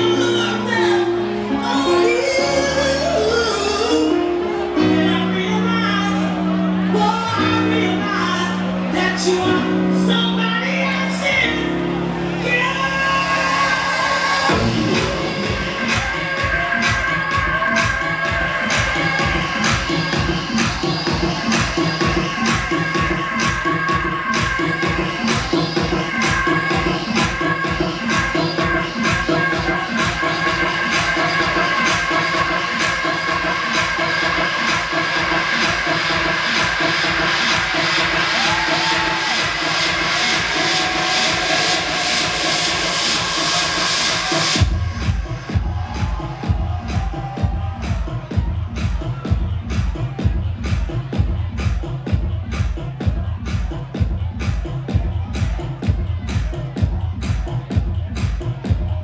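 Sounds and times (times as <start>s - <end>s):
electronic dance music: 0.0s - 59.0s.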